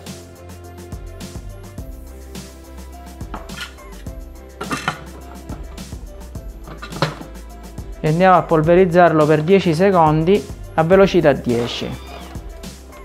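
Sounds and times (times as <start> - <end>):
sustained instrumental music: 0.0 - 13.0.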